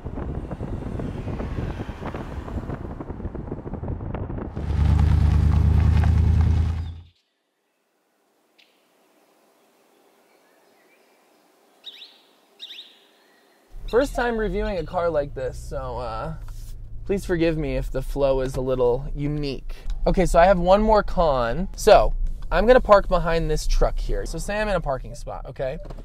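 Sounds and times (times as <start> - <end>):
car engine while driving: 0.0 - 7.1, 13.7 - 26.0
bird chirps: 9.8 - 14.0.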